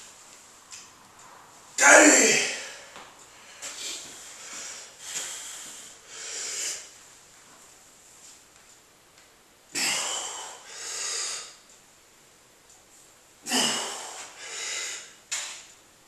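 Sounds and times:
man breathing hard: 2.4s - 7.0s, 9.8s - 11.6s, 13.5s - 15.2s.

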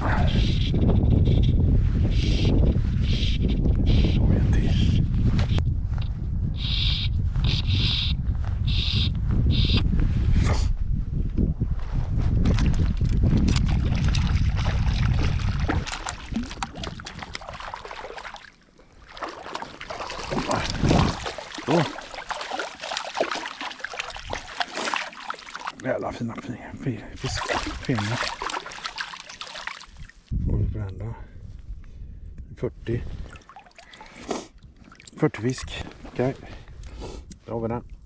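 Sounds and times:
wind buffeting microphone: 0.0s - 18.4s, 19.5s - 25.0s, 26.0s - 29.0s, 29.9s - 33.4s
water splashing and sloshing: 12.3s - 30.3s, 33.1s - 36.3s.

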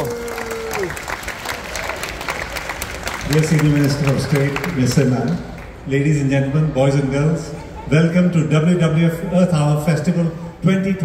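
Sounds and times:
audience applauding: 0.0s - 5.8s.

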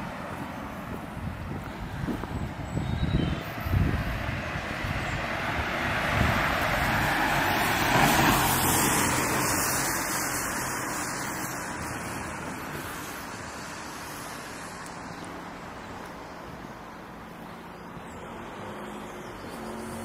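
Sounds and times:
wind buffeting microphone: 0.0s - 10.4s
car driving past: 3.6s - 13.3s.

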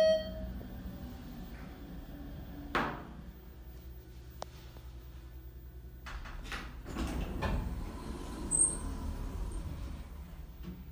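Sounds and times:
elevator doors sliding open: 0.0s - 3.3s, 6.1s - 10.9s.

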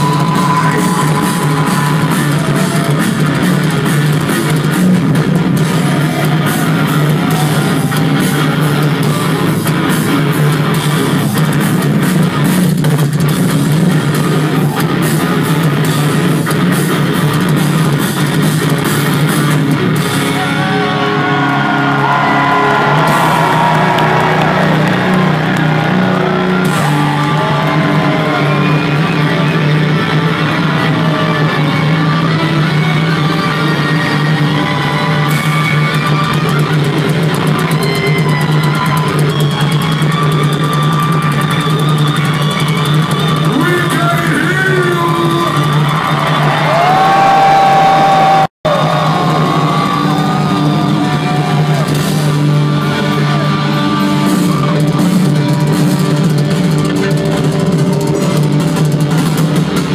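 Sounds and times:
bass guitar: 0.0s - 59.9s
distorted electric guitars: 0.0s - 59.9s
drums: 0.0s - 59.9s.

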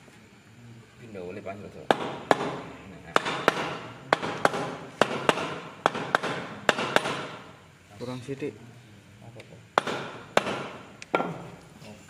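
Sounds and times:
sharp knocks: 1.9s - 7.5s, 9.8s - 11.5s.

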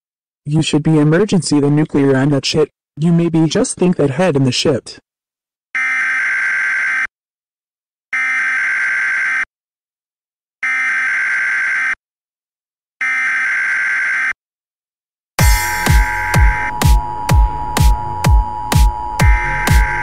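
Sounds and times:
electronic alarm buzzer: 5.8s - 7.1s, 8.1s - 9.5s, 10.6s - 12.0s, 13.0s - 14.4s, 15.4s - 20.0s.

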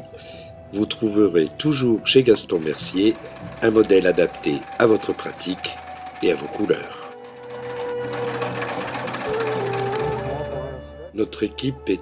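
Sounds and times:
sewing machine stitching leather: 2.0s - 10.8s.

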